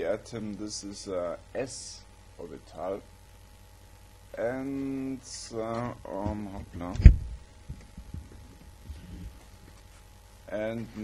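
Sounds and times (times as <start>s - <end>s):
low dull thump on microphone: 6.2s - 9.3s.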